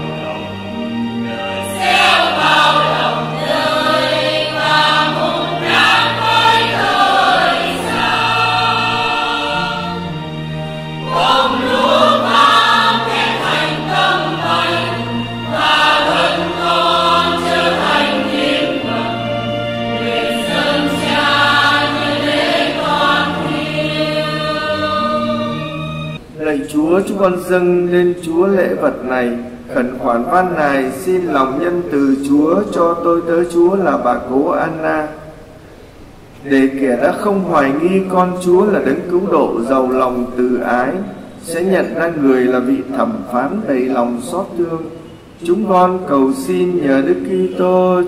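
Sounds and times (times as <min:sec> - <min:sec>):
choir singing a hymn: 0:00.0 - 0:26.3, 0:36.7 - 0:48.0
low accompaniment: 0:00.0 - 0:34.3.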